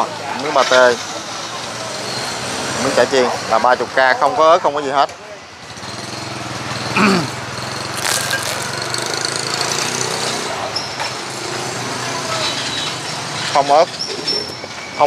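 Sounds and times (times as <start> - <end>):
street noise: 0.0 - 15.0.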